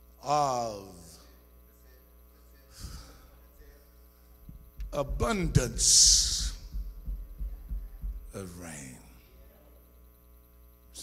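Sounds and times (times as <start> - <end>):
faint electrical hum: 0.0 - 11.0
man speaking: 4.8 - 9.8.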